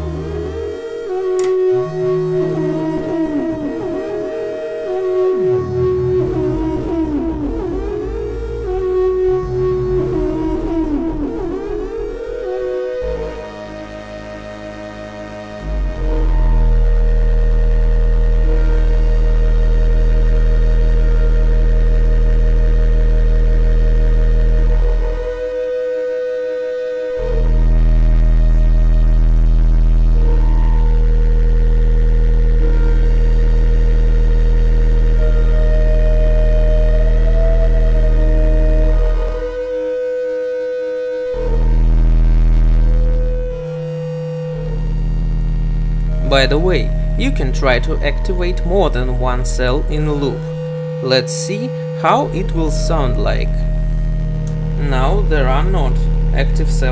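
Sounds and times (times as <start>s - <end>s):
synthesizer drone: 0.0s - 56.9s.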